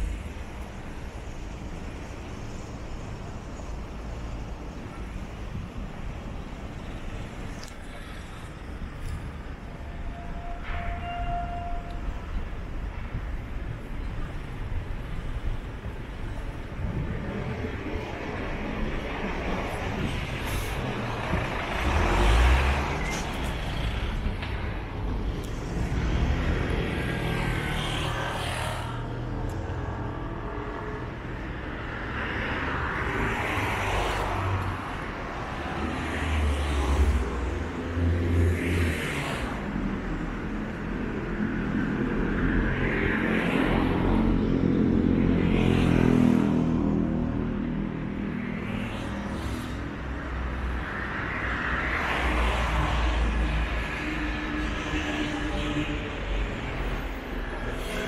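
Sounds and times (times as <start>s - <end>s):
cars and trucks passing: 0.0s - 58.0s
heavy vehicle engine hum: 0.0s - 58.0s.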